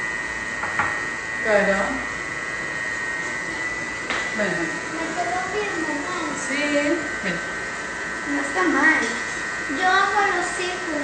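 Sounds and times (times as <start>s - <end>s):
faint high whine: 0.0s - 11.0s.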